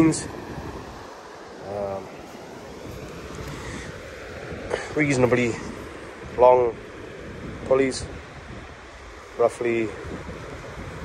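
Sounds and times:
sea surf: 0.0 - 11.0
wind rumble on microphone: 0.0 - 11.0
wind rushing: 0.0 - 11.0.

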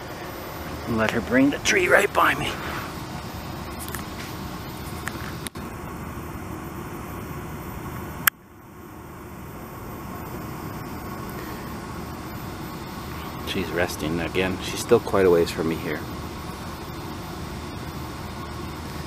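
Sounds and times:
distant road traffic hum: 0.0 - 19.0.

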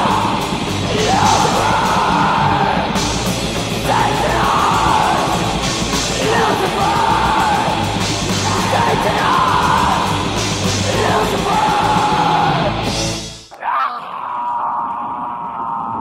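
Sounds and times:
fast drums with crashing cymbals: 0.0 - 13.4
distorted electric guitars: 0.0 - 13.5
harsh yelled vocals: 0.0 - 16.0.

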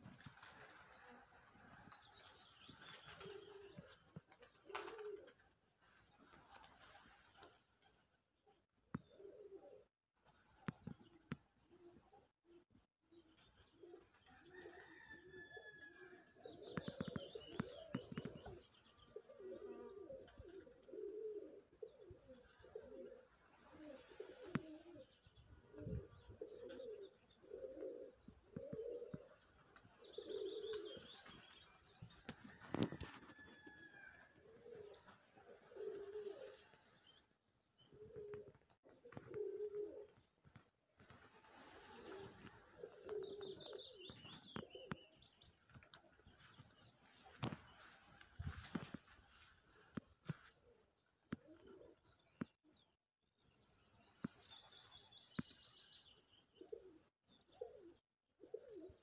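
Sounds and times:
pigeons cooing: 0.0 - 7.6, 9.0 - 12.6, 13.2 - 52.8, 54.6 - 59.0
small birds chirping and trilling: 0.4 - 5.2, 13.1 - 20.8, 21.8 - 38.5, 41.0 - 58.0.

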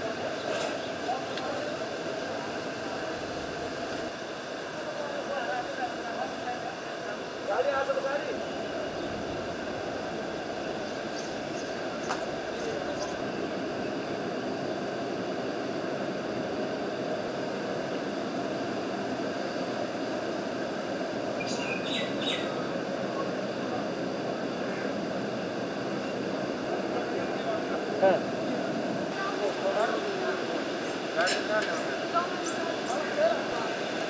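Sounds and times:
river rushing with a roar: 0.0 - 34.0.

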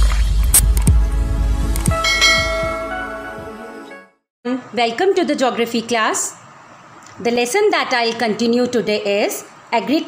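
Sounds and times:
bell chime ringing: 2.0 - 3.3.

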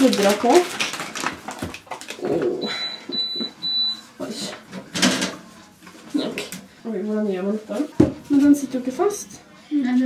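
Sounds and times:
paper rustling: 0.0 - 2.2.

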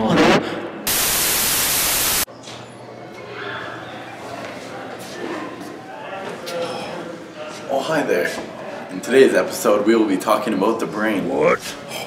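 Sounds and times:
tv static hiss: 0.0 - 2.3.

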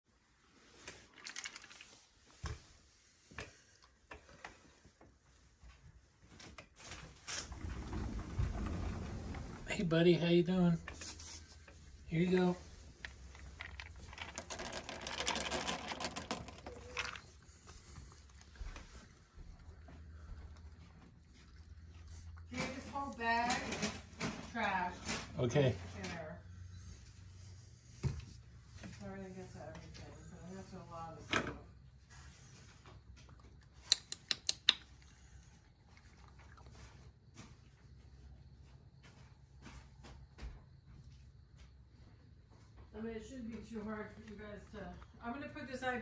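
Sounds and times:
raccoon feeding clicks and rustles: 0.6 - 9.7, 10.8 - 26.1, 28.7 - 40.5
dry food pattering on wooden deck: 10.8 - 24.3.

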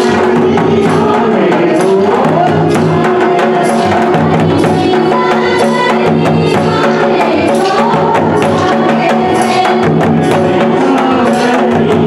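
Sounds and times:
barrel drums: 0.0 - 12.0
women singing into microphones: 0.0 - 12.0.

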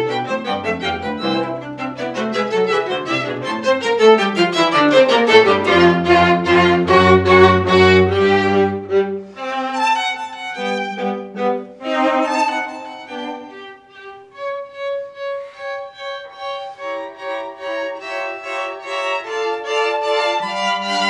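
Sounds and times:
string quartet bowed chords: 0.0 - 21.0.

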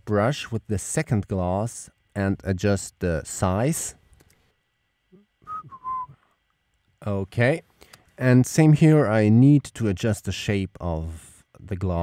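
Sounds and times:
person whistling: 5.4 - 6.4.

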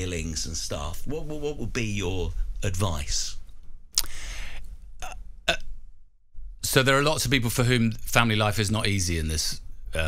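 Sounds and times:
mouth click: 3.9 - 4.3
quick in-breath: 4.0 - 4.6.

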